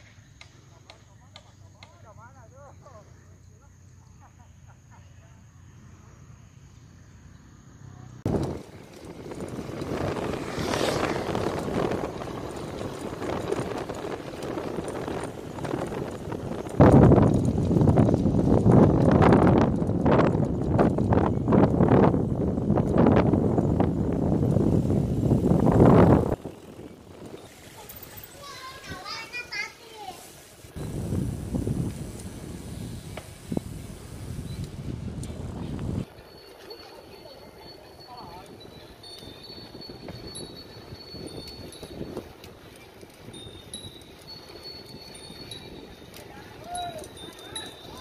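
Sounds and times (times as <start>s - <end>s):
wind buffeting microphone: 8.2s - 48.0s.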